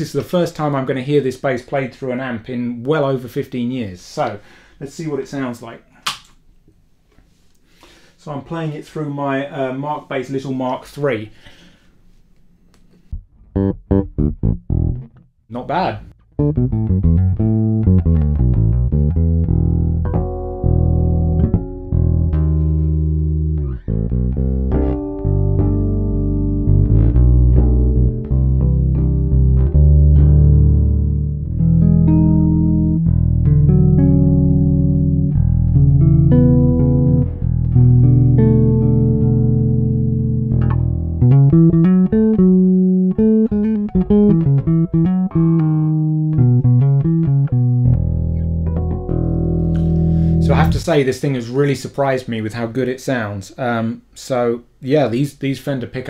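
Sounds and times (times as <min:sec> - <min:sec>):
electric bass plucked: 0:13.1 - 0:51.0.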